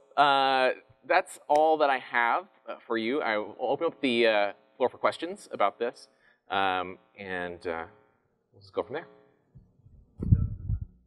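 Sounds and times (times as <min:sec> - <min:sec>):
muffled thumps and rumble: 0:09.6 - 0:11.0.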